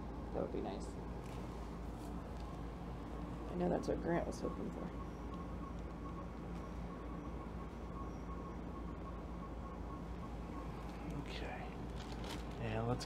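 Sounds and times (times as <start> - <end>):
low room tone hum: 0.0 - 13.0.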